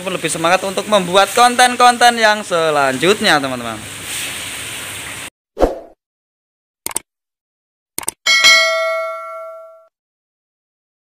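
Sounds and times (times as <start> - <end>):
notification bell ding: 8.3 - 9.9.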